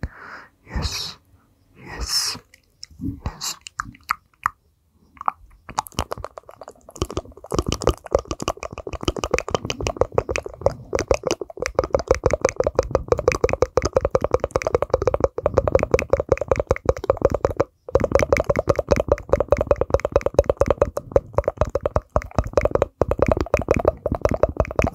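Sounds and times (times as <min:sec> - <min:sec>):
tongue clicks and pops: 0:02.0 - 0:24.9.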